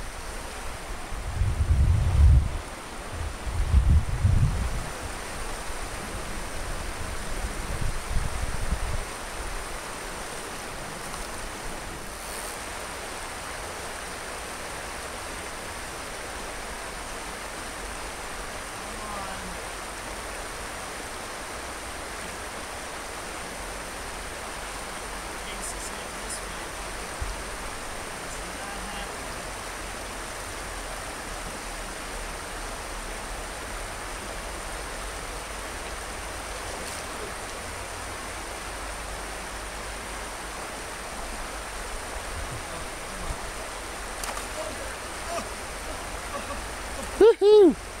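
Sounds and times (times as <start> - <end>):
stream water rushing: 0.0 - 48.0.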